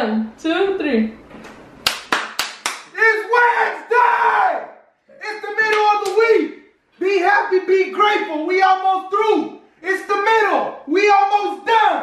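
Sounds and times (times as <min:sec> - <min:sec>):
sharp hand claps: 0:01.8 - 0:03.0, 0:05.6 - 0:06.4.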